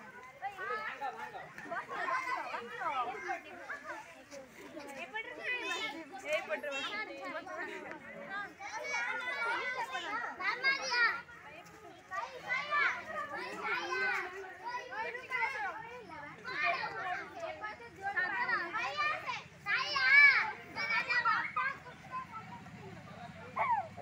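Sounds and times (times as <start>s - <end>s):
children calling out and chattering: 0.0s - 24.0s.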